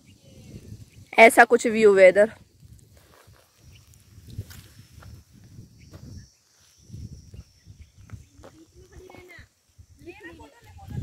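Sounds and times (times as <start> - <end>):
footsteps on dry leaves: 2.6 - 9.4.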